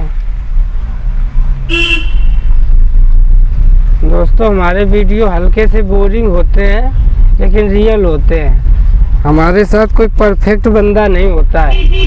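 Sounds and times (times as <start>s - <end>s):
vehicle horn honk: 1.7s - 2.5s, 11.7s - 12.0s.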